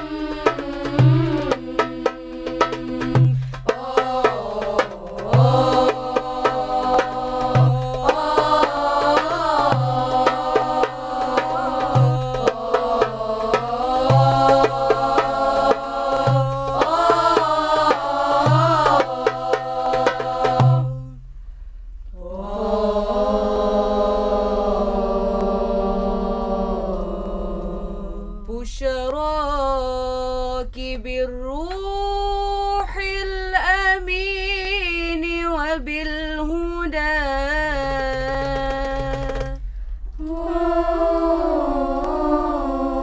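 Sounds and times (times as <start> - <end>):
drum beat: 0.0 - 21.0
girls singing in unison: 0.0 - 21.2, 22.2 - 29.2, 40.2 - 43.0.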